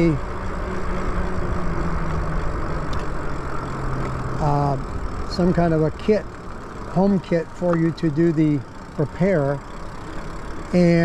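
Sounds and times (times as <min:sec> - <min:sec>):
low steady hum: 0:00.0 - 0:11.0
wind and tyre noise: 0:00.0 - 0:11.0.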